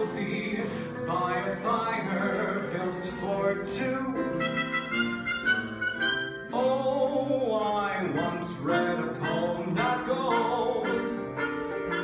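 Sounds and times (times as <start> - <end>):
orchestra playing slow song: 0.0 - 12.0.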